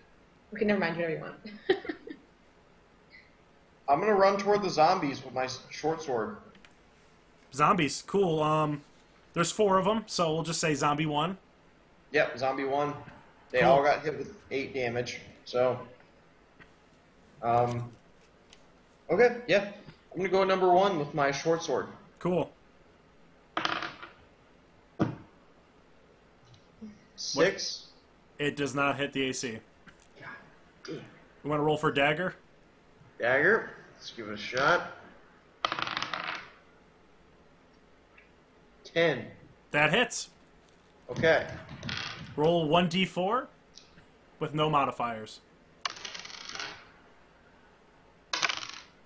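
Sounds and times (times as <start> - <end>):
die rattling on hard tabletop: 48.4 - 49.0.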